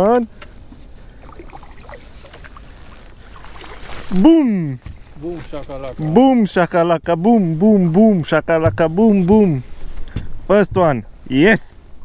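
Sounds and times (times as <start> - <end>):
fish splashing in water: 1.1 - 4.2.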